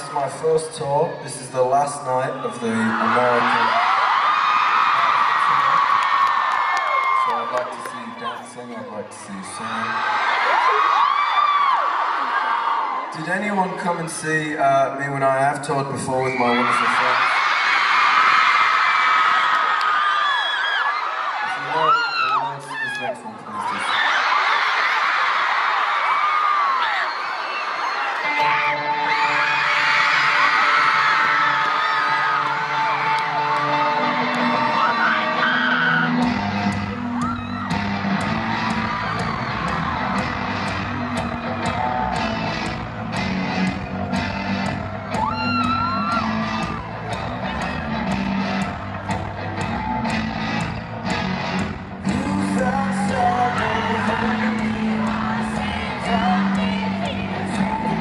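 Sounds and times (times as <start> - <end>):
concert crowd screaming and cheering: 0.0 - 58.0
electric guitar chords: 28.2 - 58.0
full band with drum beat: 29.8 - 58.0.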